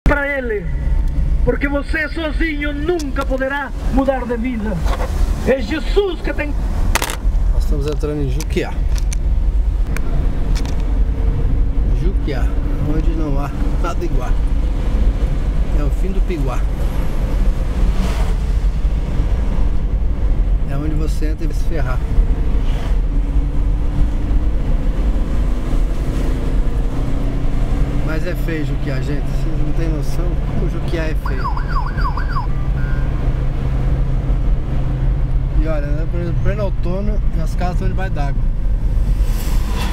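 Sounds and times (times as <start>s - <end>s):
car engine and road noise: 0.0s - 39.9s
warbling siren-like tone: 31.3s - 33.1s.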